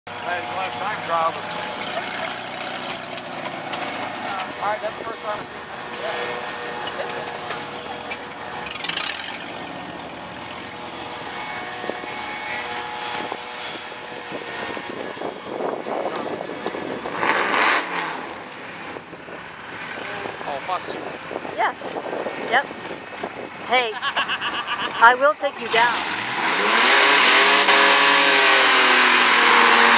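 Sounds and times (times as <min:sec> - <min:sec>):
race car engines idling: 0:00.1 - 0:14.4
car engines running: 0:00.1 - 0:29.9
wind on microphone: 0:11.3 - 0:18.2, 0:18.8 - 0:23.8.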